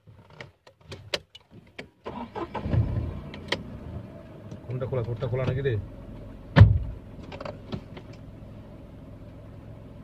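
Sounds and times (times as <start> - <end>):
car engine running: 2.6 - 10.0.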